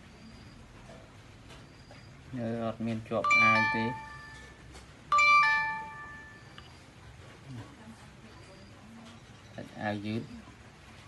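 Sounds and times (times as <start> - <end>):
two-note doorbell chime: 3.2 - 6.5.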